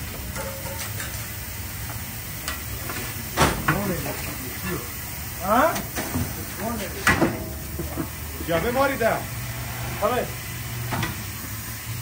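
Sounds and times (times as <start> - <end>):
people talking: 3.4 - 7.4, 8.4 - 9.3, 10.0 - 10.4.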